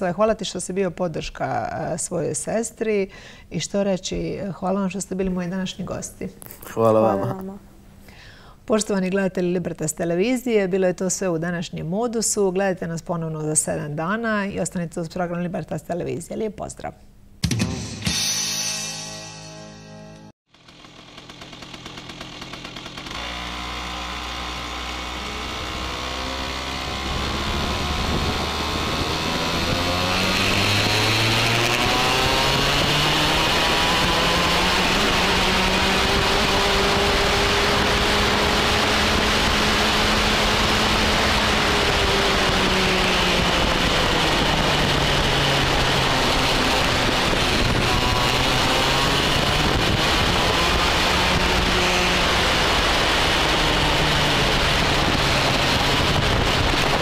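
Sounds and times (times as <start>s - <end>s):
kart engine accelerating: 20.6s - 57.0s.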